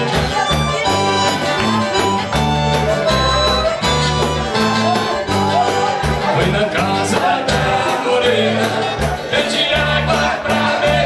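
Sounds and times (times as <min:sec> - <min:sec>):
piano accordion: 0:00.0 - 0:07.3
acoustic guitar: 0:00.0 - 0:11.0
electric bass: 0:00.0 - 0:11.0.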